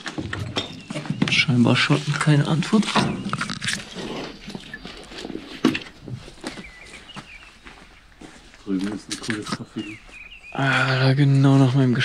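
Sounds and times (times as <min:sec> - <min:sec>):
bird chirps: 0:00.0 - 0:12.0
footsteps crunching dry leaves: 0:00.8 - 0:09.2.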